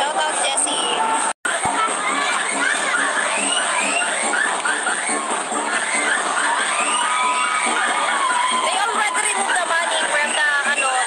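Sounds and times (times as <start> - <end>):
crowd cheering and shouting: 0.0 - 11.0
music with steady beat: 1.5 - 11.0.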